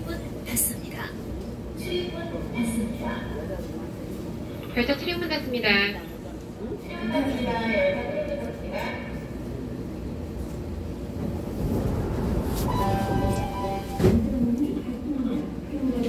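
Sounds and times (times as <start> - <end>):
subway train rumbling: 0.0 - 16.0.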